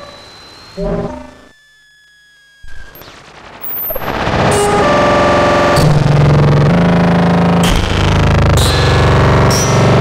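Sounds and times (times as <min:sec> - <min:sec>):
buzzy synthesizer drone: 0:00.0 - 0:01.6, 0:02.7 - 0:10.0.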